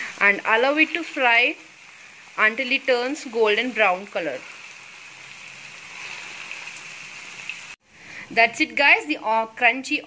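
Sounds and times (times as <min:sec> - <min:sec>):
onion rings sizzling in oil: 0:00.0 - 0:07.8.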